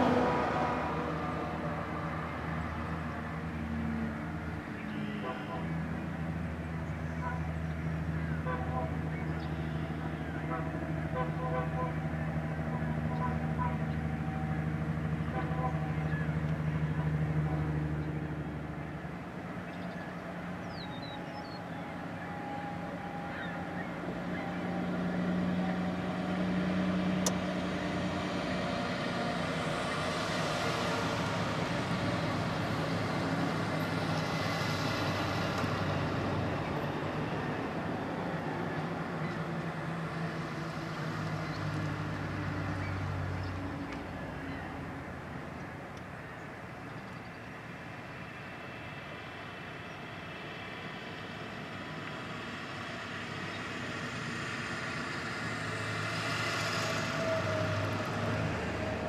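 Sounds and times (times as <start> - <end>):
locomotive engine drone: 0.0 - 59.0.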